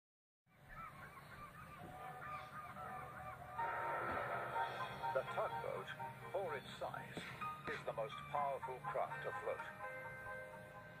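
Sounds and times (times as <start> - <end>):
birds honking: 0.5 - 11.0
loud sound with held tones: 2.8 - 6.8.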